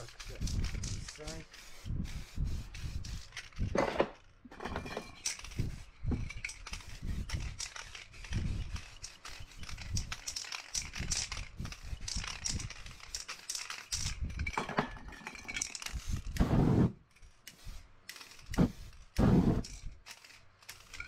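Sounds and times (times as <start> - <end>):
spray can hissing: 0.0 - 3.6, 5.2 - 14.2, 15.7 - 21.0
spray can rattling: 0.0 - 21.0.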